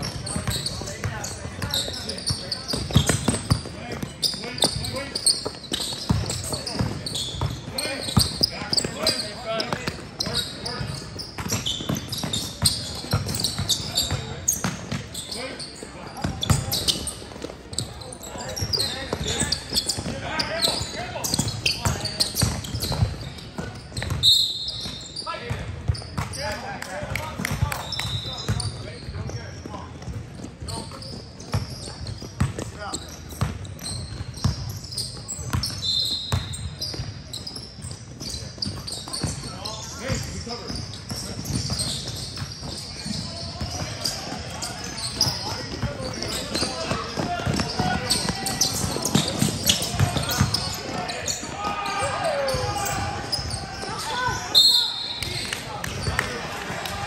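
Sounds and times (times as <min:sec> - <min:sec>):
shoe squeaks: 0:00.0 - 0:26.5, 0:27.6 - 0:56.2
basketball dribbling on gym floor: 0:45.2 - 0:51.0.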